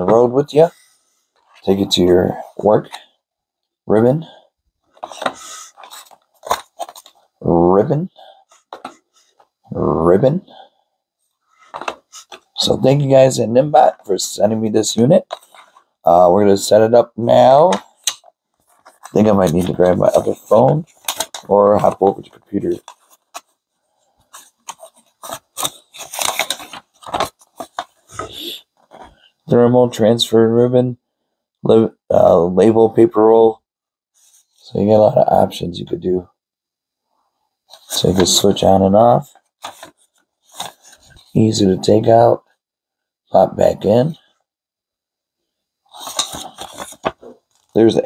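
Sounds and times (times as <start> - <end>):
paper rustling and crinkling: 4.9 - 7.3, 11.6 - 13.0, 17.6 - 29.2, 37.7 - 38.6, 39.4 - 41.4, 45.9 - 47.8.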